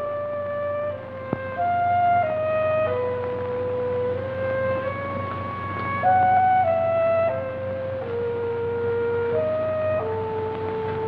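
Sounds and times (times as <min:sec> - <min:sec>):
slow film score melody: 0:00.0 - 0:11.0
steady low hum: 0:00.0 - 0:11.0.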